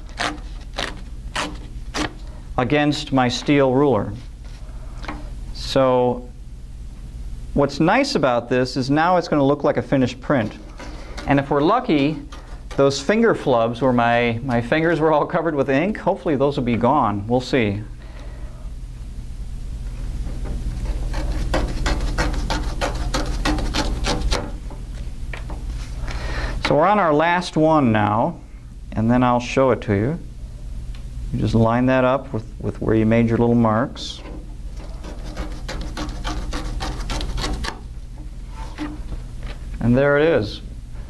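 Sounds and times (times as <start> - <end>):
paper tearing along a ruler: 0.0 - 2.2, 20.8 - 24.5, 34.8 - 37.8.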